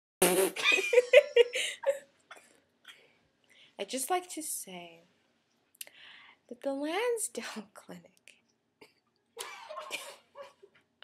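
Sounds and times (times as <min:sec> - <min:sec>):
young woman laughing: 0:00.6 - 0:02.1.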